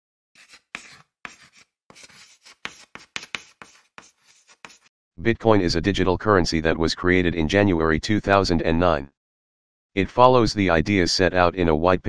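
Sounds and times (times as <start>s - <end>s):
chalk scratching on chalkboard: 0.4s - 4.9s.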